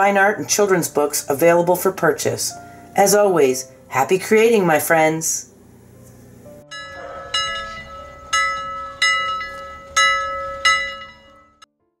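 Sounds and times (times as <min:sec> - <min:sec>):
bell-like chimes: 0:06.7 - 0:11.6.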